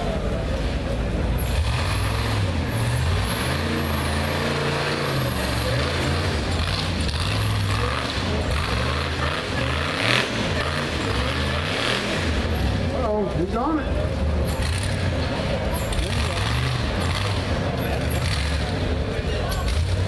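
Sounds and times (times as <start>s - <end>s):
buggy engine revving hard: 0.0s - 13.4s, 14.0s - 20.0s.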